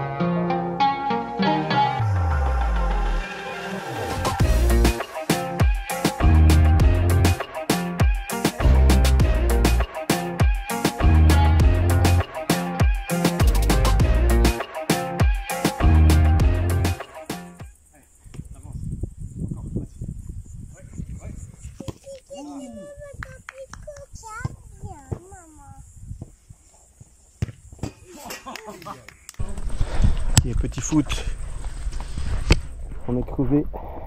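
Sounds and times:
children calling out and talking: 0:21.7 - 0:25.9.

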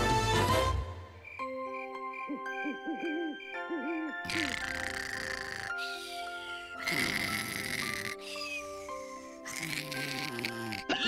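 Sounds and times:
owl hooting: 0:02.2 - 0:10.8.

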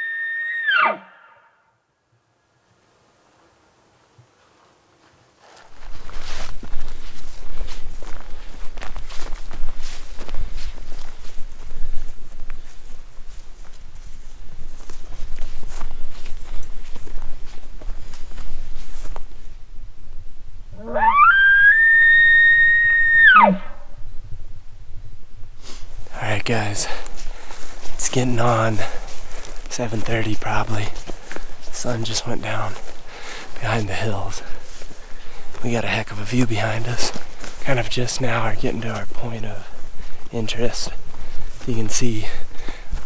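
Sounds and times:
elk bugle: 0:00.0 - 0:01.8, 0:20.7 - 0:24.0
footsteps through brush: 0:04.3 - 0:21.0, 0:25.4 - 0:43.0.

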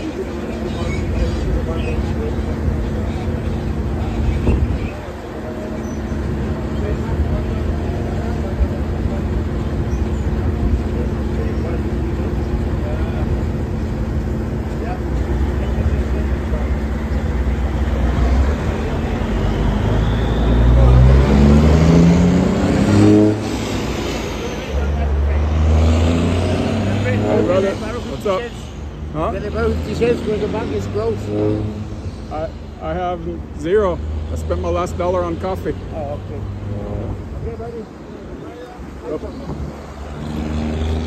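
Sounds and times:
minibus engine idling: 0:00.0 - 0:20.9
vehicle engine revving: 0:00.0 - 0:41.0.

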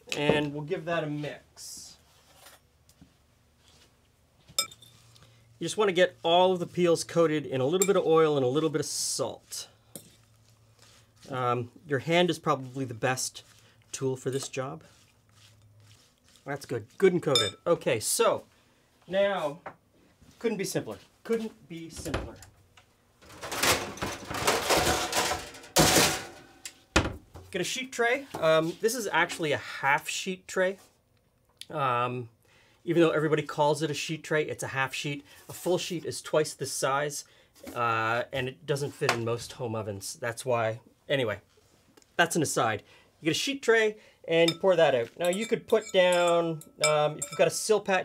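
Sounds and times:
metal trays clattering and scraping: 0:23.2 - 0:26.6.

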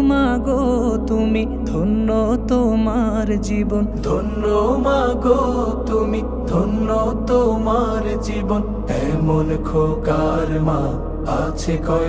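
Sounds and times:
low drone: 0:00.0 - 0:12.0
person singing a lament: 0:00.0 - 0:12.0.

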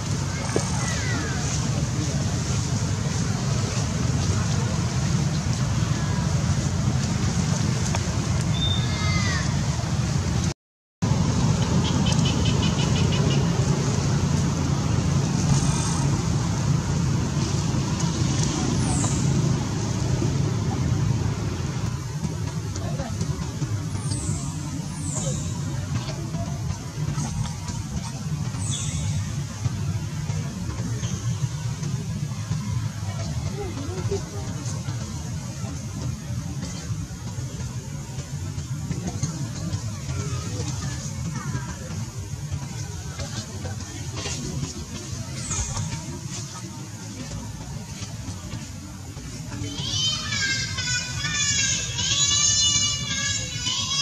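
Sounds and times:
low rumble of distant traffic: 0:00.0 - 0:54.0.

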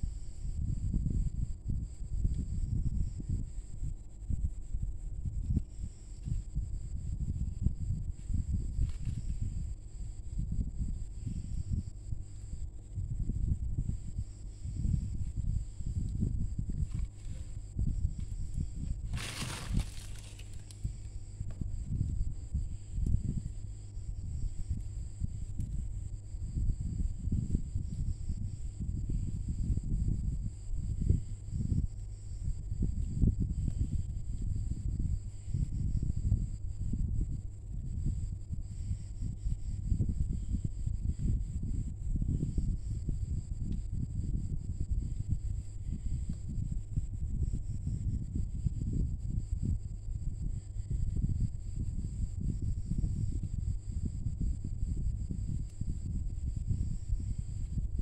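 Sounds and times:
faint high whine: 0:00.0 - 0:58.0.

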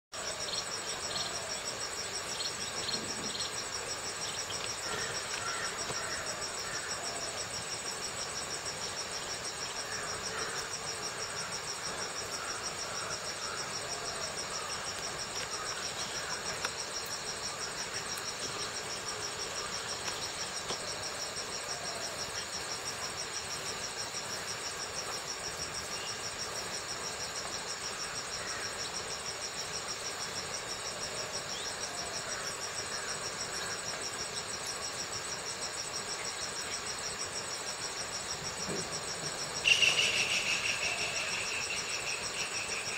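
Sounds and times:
insects trilling: 0:00.1 - 0:42.9.

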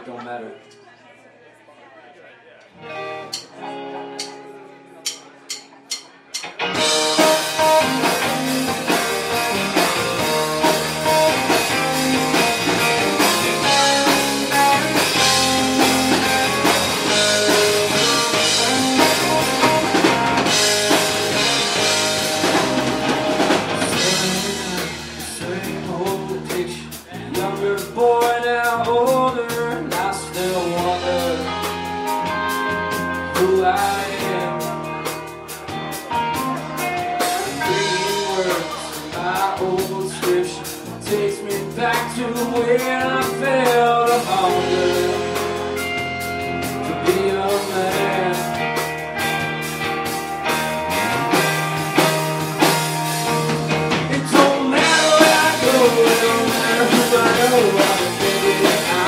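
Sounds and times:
rock band playing: 0:02.8 - 0:59.0
man singing: 0:09.1 - 0:32.0, 0:33.0 - 0:35.2, 0:36.3 - 0:49.0, 0:53.9 - 0:59.0.

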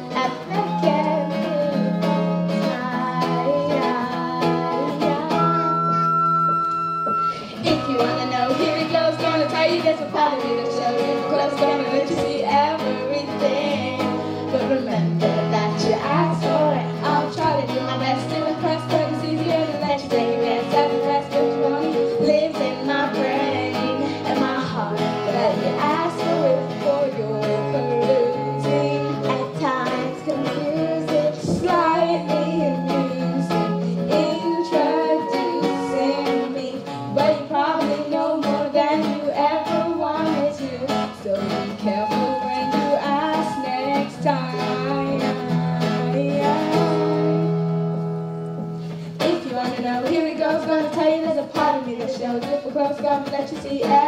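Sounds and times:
held bass notes: 0:00.0 - 0:20.0
keyboard: 0:00.0 - 0:49.5
acoustic guitar: 0:00.0 - 0:54.0
flute: 0:00.2 - 0:12.8, 0:25.8 - 0:36.7, 0:41.8 - 0:45.5.

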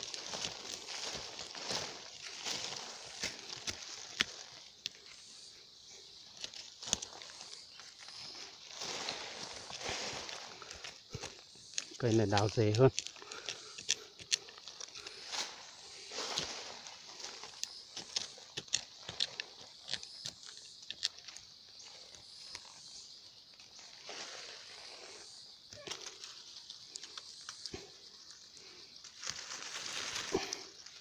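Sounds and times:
dry leaves rustling: 0:00.0 - 0:19.9, 0:28.7 - 0:31.0.

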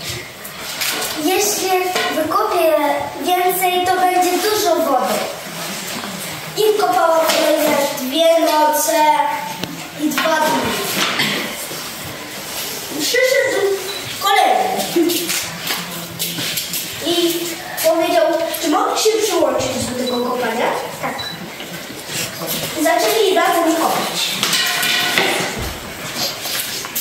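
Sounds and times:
children speaking: 0:00.0 - 0:26.7.

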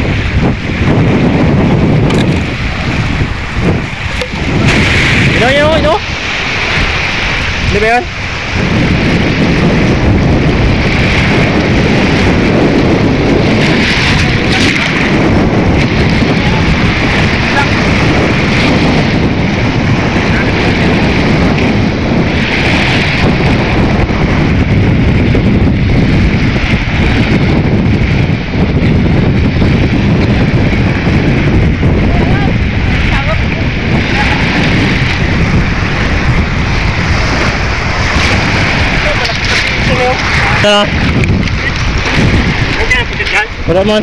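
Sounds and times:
waves washing over pebbles: 0:00.0 - 0:44.0
wind buffeting microphone: 0:00.0 - 0:44.0.

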